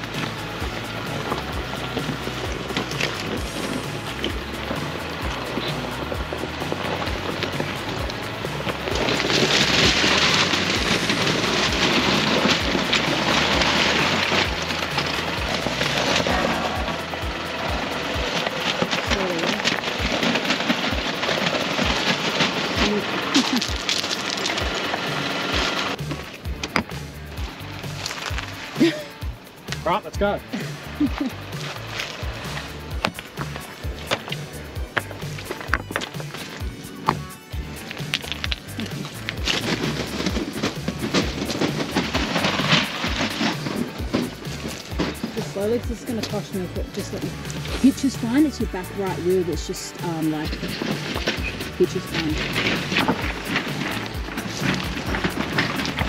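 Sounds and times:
crunches on stony ground: 0.0 - 56.0.

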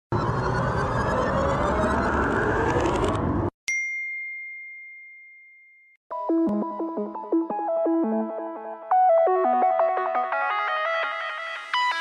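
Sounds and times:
high bell-like ding: 3.7 - 6.0.

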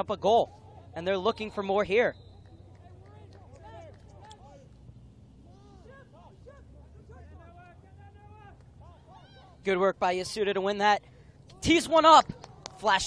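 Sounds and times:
distant players shouting: 0.0 - 13.0
open-air field ambience rumble: 0.0 - 13.0.

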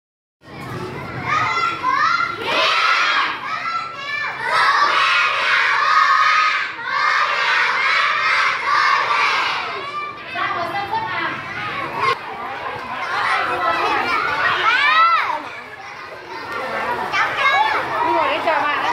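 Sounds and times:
young children chanting together: 1.4 - 9.9.

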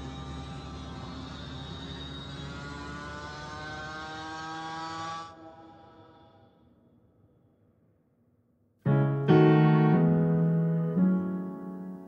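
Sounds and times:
vehicle running rush and rumble: 0.0 - 5.5
rising whine: 0.0 - 6.8.

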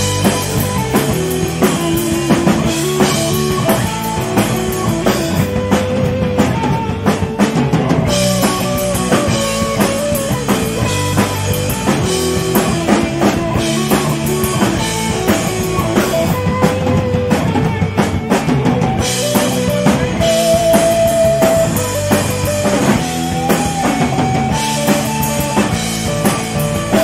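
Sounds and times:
bass guitar: 0.0 - 27.0
distorted electric guitar: 0.0 - 27.0
driving drum kit: 0.0 - 27.0.

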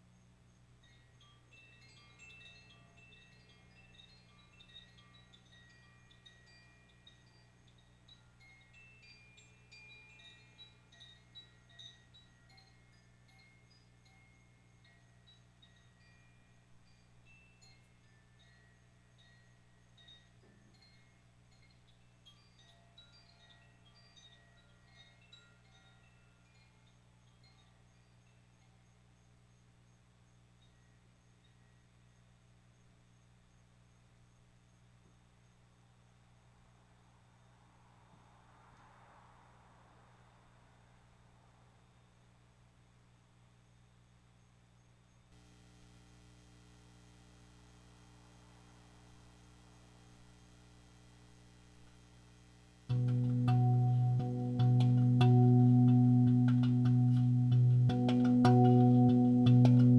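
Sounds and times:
faint low hum: 0.0 - 59.9
hanging chimes tinkling: 0.8 - 28.8.

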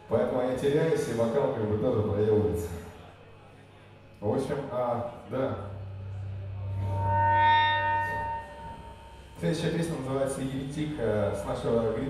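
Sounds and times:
low hum: 4.0 - 12.0
ringing electric guitar tone: 4.2 - 12.0.

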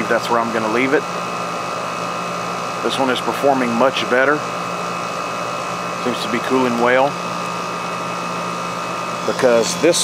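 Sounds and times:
air conditioner fan and compressor hum: 0.0 - 10.0
high-pitched whine: 8.7 - 10.0.

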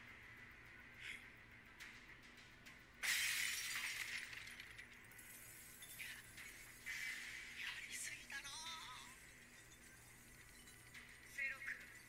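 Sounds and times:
ice crackling and shattering: 3.0 - 8.2.

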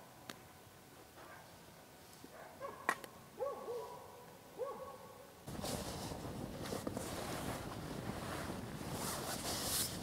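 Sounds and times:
campfire burning: 5.5 - 10.0.

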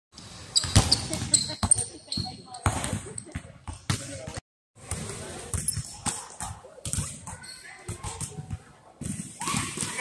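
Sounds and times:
shoe squeaks: 0.5 - 2.7
basketballs bouncing on court: 0.6 - 10.0.

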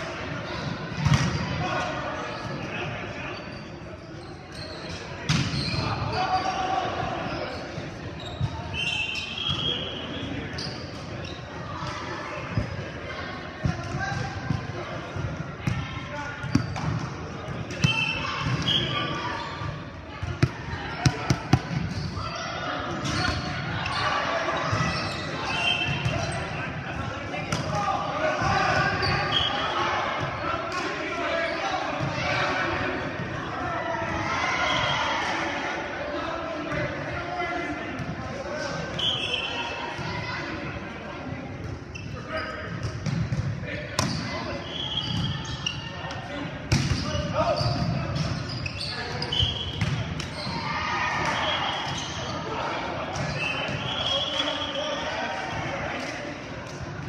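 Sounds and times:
players talking and calling out: 0.0 - 57.0.

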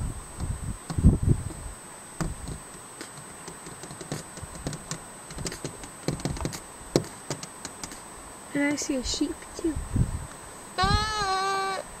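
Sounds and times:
person bleating like a sheep: 10.8 - 11.9.

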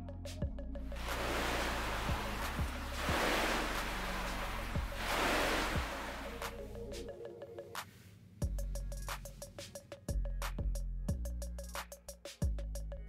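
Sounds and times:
electronic music with bass and kick: 0.0 - 3.4, 4.3 - 7.4, 8.4 - 13.0
rushing wash of noise: 1.0 - 7.0.

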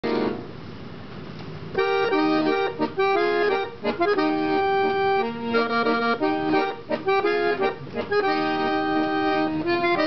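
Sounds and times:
accordion playing a waltz: 0.0 - 0.6, 1.7 - 10.0.

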